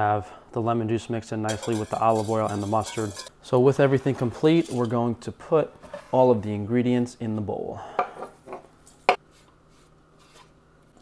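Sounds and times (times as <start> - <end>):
knife and board knocking bowl: 1.5 - 3.3.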